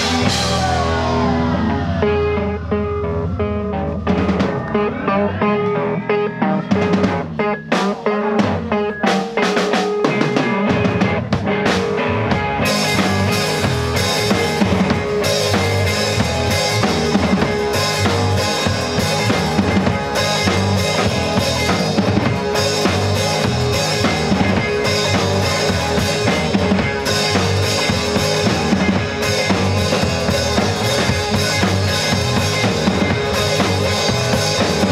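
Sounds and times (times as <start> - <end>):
drum kit hits: 0.0 - 2.4
low bass notes: 0.0 - 7.6, 10.7 - 34.9
electric guitars: 0.0 - 34.9
keyboard: 0.0 - 34.9.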